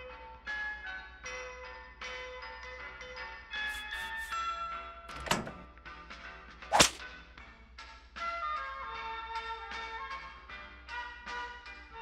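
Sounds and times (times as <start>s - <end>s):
cartoon whip crack: 6.7s - 7.0s.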